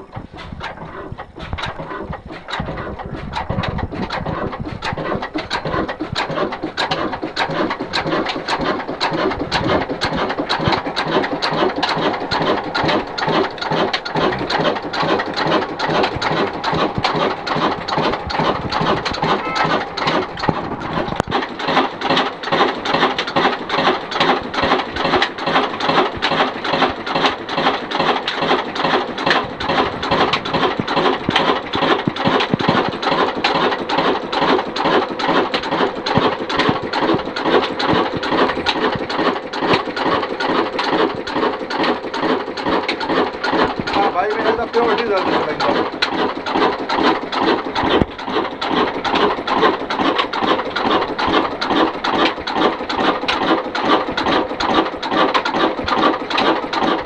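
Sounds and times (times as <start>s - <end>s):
diesel engine clattering: 0.0s - 57.0s.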